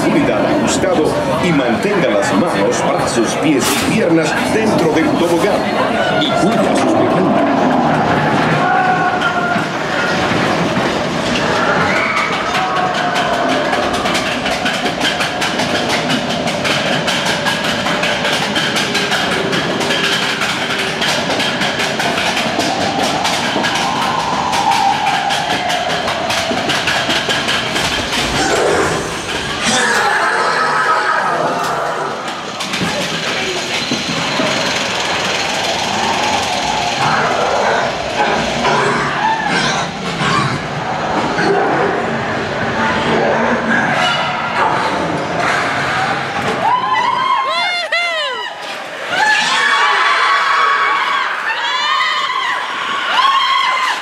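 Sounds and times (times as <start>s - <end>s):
roller coaster rumbling on track: 0.0s - 54.0s.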